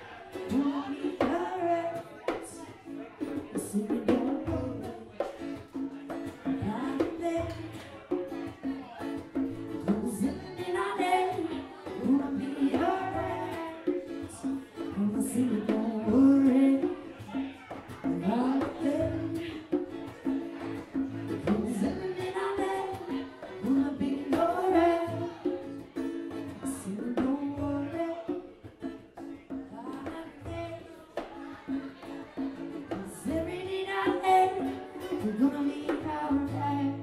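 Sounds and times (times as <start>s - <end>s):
person singing: 0.0s - 8.1s, 9.7s - 17.4s, 18.0s - 19.9s, 21.2s - 28.5s, 29.5s - 37.0s
drums: 0.0s - 37.0s
strummed acoustic guitar: 0.0s - 37.0s.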